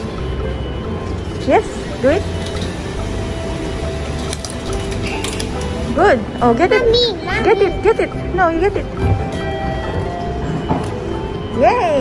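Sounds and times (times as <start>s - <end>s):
ticket gate mechanical clicks: 1.0s - 6.8s.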